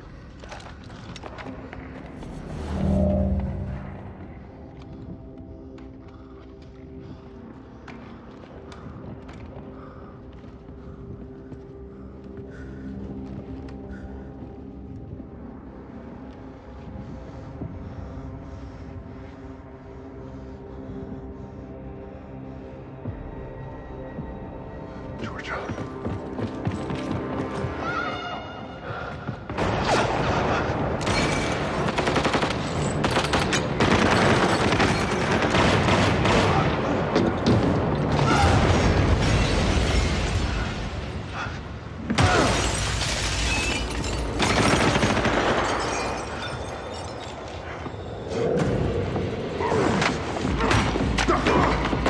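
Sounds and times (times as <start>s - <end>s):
low droning film music: 0.0s - 52.0s
rapid rifle gunfire: 31.7s - 36.8s.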